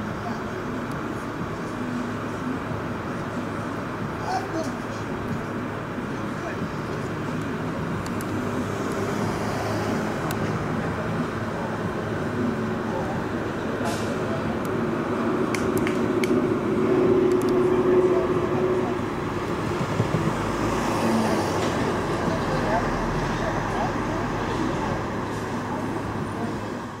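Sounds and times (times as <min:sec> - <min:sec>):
engine hum: 0:00.0 - 0:27.0
indistinct voices: 0:00.0 - 0:27.0
traffic noise: 0:00.0 - 0:27.0
sharp clicks: 0:17.2 - 0:17.6.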